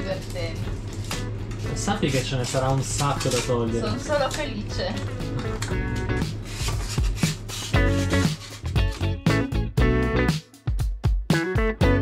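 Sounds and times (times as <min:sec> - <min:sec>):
background music of pitched notes: 0:00.0 - 0:12.0.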